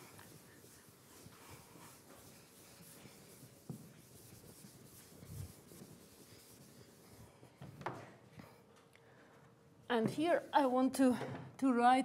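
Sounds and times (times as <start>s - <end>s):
chalk tap: 0.0s - 7.1s
chalk writing on blackboard: 0.0s - 7.5s.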